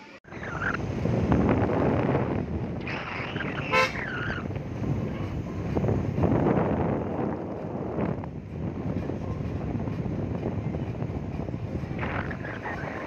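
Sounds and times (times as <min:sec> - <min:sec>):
car engine and road noise: 0:00.0 - 0:13.0
wind rushing over microphone: 0:00.3 - 0:13.0.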